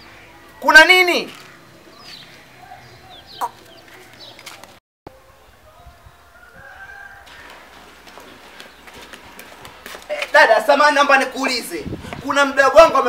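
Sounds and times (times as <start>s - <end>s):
rooster crowing faintly: 5.1s - 7.8s.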